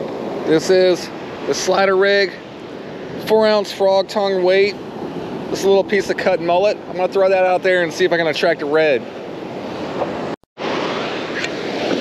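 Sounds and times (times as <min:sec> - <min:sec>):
ocean surf breaking: 0:00.0 - 0:12.0
wind on microphone: 0:09.2 - 0:12.0.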